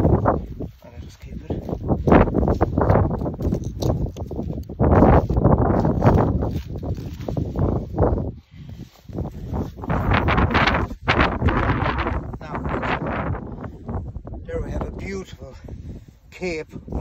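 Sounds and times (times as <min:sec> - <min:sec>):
rustling and scraping of skin: 0:00.0 - 0:12.2.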